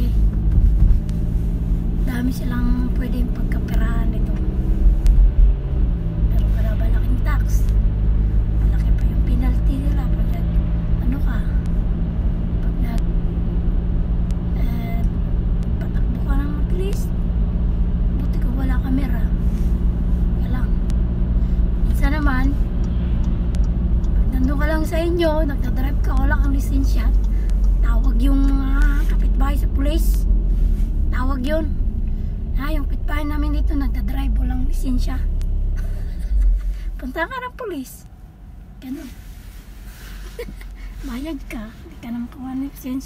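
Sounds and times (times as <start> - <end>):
car engine and road noise: 0.0 - 43.0
woman speaking: 2.1 - 4.4, 6.3 - 7.7, 8.6 - 11.7, 12.6 - 13.0, 14.5 - 15.2, 15.8 - 17.1, 18.2 - 19.4, 20.4 - 20.8, 21.9 - 22.6, 24.1 - 30.3, 31.1 - 31.8, 32.6 - 35.3, 37.0 - 38.1, 38.8 - 39.2, 40.9 - 43.0.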